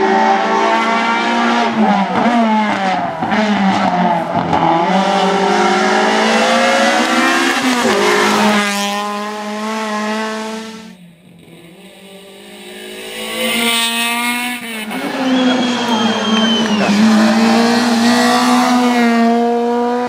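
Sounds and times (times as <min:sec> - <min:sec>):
rally car engines at high revs: 0:00.0 - 0:20.0.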